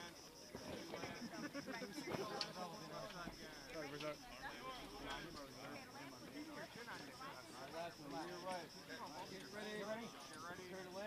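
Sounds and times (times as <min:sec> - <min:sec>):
people talking in background: 0:00.0 - 0:11.0.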